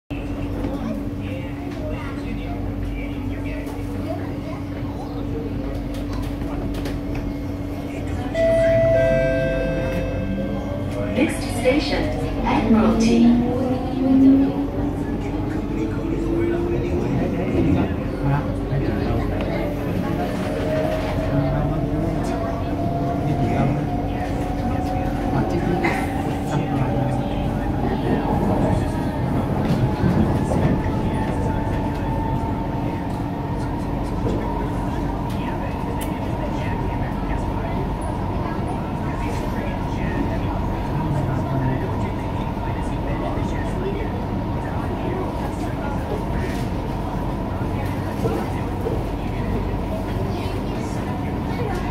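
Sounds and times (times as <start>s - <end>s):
train carriage humming: 0.1s - 51.9s.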